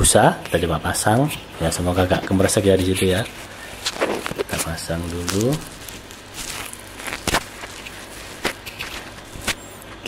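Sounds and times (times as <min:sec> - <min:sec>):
steady hiss: 0:00.1 - 0:09.9.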